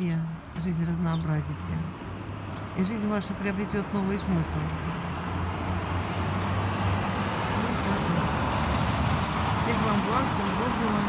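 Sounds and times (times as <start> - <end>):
road traffic rush: 0.0 - 11.0.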